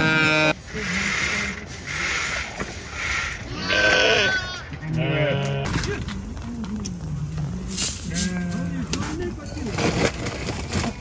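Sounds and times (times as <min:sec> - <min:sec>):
sheep bleating: 0:03.5 - 0:05.7.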